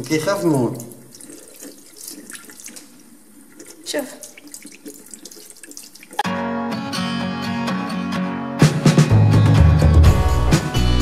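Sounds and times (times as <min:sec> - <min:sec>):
water splashing over hands: 0:00.0 - 0:06.2
water running from sink tap: 0:00.0 - 0:06.3.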